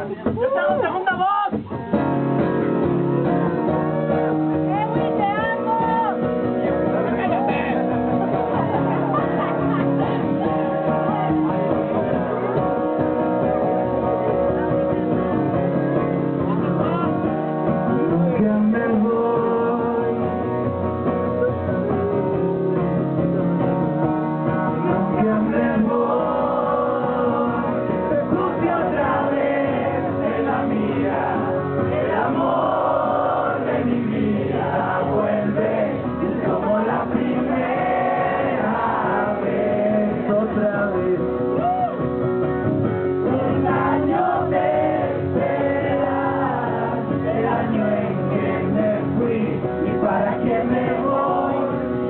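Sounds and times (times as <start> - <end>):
guitar playing: 0.0 - 52.0
person singing: 17.9 - 20.6, 21.3 - 23.6.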